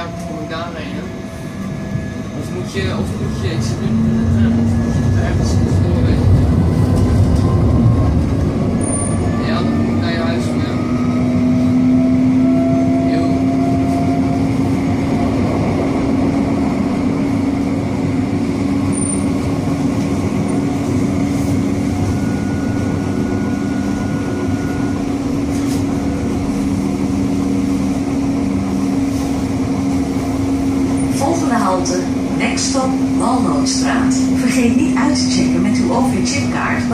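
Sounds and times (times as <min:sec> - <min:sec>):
tram running noise: 0:00.0 - 0:36.9.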